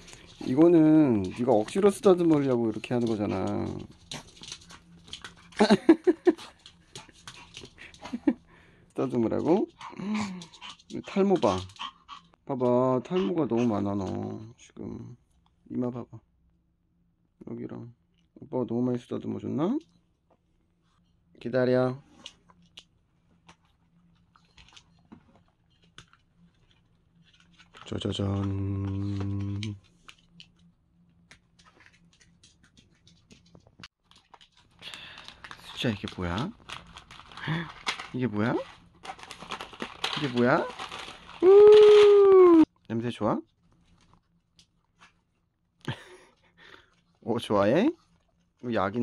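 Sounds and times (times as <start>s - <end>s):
low room hum: 0.0s - 49.0s.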